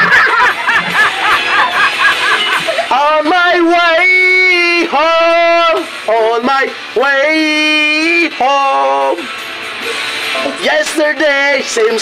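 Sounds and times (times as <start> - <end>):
men laughing hard: 0.0 - 3.2
rock song backing track: 0.0 - 12.0.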